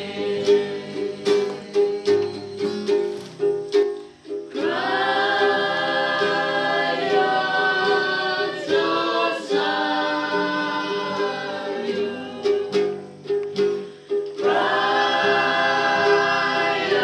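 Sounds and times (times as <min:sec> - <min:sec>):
group singing long notes: 0:00.0 - 0:02.8, 0:04.5 - 0:17.0
ukulele strumming: 0:00.0 - 0:17.0.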